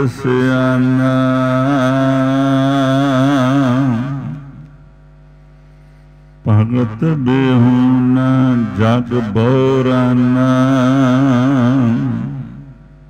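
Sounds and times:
person chanting: 0.0 - 4.7, 6.4 - 12.8
steady drone: 0.0 - 13.0.

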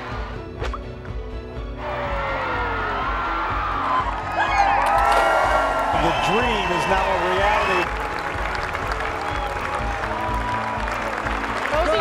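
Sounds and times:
background music with low beat: 0.0 - 12.0
crowd applauding: 3.8 - 12.0.

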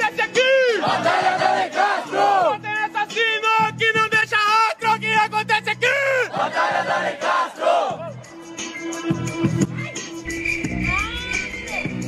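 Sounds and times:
crowd shouting and yelling: 0.0 - 4.7, 5.6 - 8.7, 9.6 - 12.0
person yelling close to microphone: 2.5 - 6.3.

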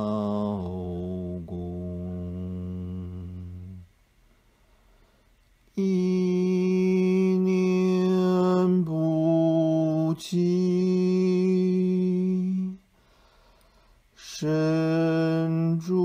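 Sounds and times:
person chanting held notes: 0.0 - 3.9.

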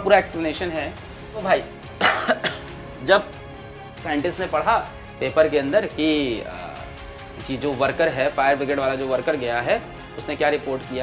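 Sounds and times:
man coughing: 1.9 - 2.8.

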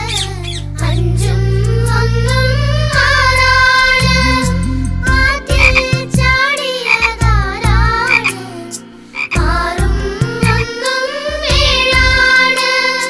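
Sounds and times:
cartoon frog croaking: 5.5 - 6.0, 6.9 - 7.2, 8.0 - 8.4, 9.2 - 9.5.

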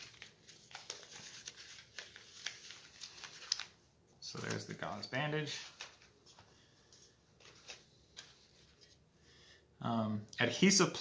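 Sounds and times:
paper wrapper crinkling: 0.0 - 6.5.

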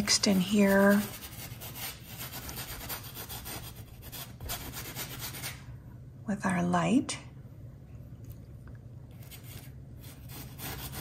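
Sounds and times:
paintbrush scrubbing on canvas: 0.0 - 5.5, 9.2 - 11.0.

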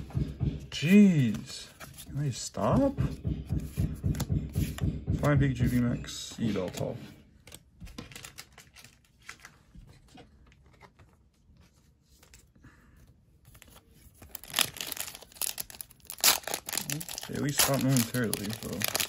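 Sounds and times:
foil wrapper crinkling and tearing: 14.2 - 19.0.

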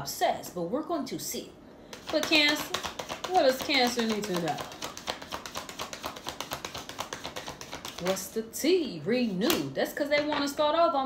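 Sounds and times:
cards being shuffled: 1.9 - 8.2.

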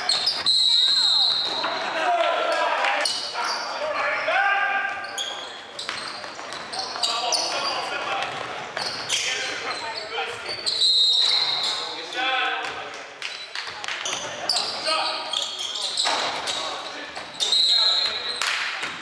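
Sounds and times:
sneakers squeaking on hardwood: 0.0 - 1.8, 3.0 - 12.0, 13.3 - 19.0.

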